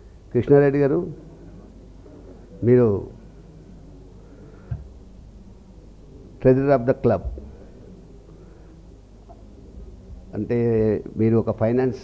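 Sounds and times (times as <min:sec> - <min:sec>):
man speaking into a microphone: 0:06.4 - 0:07.4, 0:10.3 - 0:12.0.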